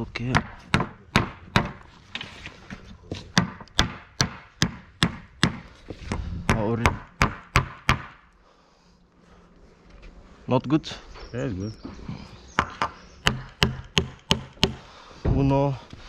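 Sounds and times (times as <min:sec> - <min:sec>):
hammer knocking on wood: 0:00.3 - 0:01.8, 0:03.3 - 0:08.2, 0:12.6 - 0:15.5.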